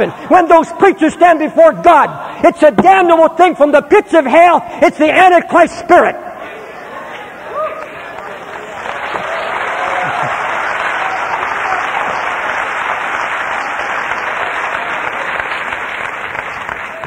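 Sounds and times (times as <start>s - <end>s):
congregation applauding: 7.8s - 17.0s.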